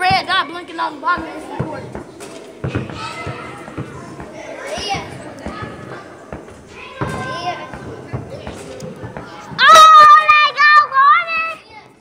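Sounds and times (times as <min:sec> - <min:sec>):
children's voices and calls: 0:00.0 - 0:12.0
basketball bouncing on hard floor: 0:01.2 - 0:04.4, 0:05.0 - 0:09.3.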